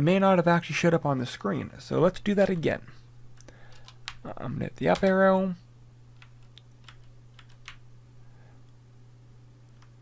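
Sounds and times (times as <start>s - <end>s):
faint low hum: 0.0s - 10.0s
keyboard keystrokes: 6.2s - 7.8s.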